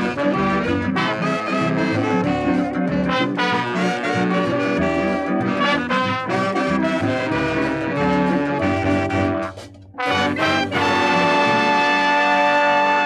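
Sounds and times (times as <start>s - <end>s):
calypso band playing: 0.0s - 13.0s.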